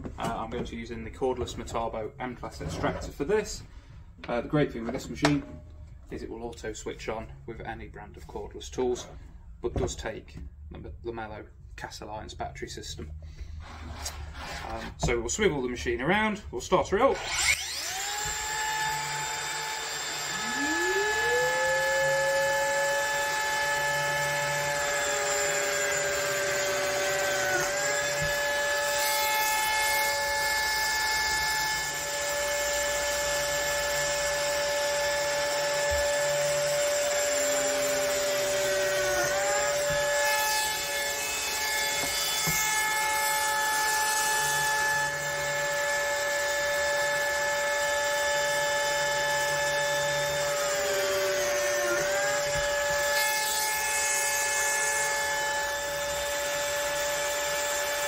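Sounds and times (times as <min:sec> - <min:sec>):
biscuit joiner whining: 0:17.0 - 0:58.0
dust extractor running: 0:17.2 - 0:28.8.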